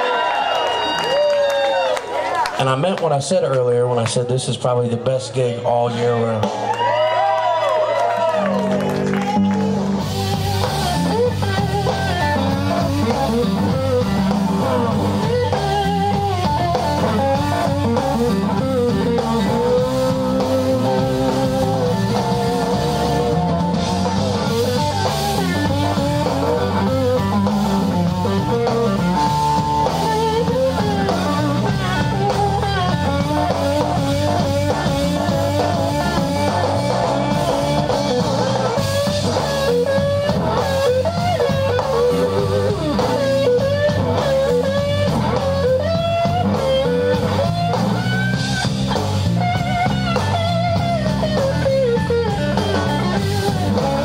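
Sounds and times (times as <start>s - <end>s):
bass guitar: 0.0s - 54.0s
drum kit: 6.3s - 54.0s
electric guitar lead lines: 7.5s - 54.0s.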